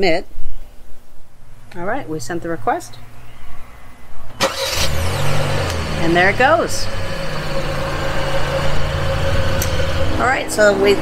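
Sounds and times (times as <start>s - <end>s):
car engine idling: 4.4s - 11.0s.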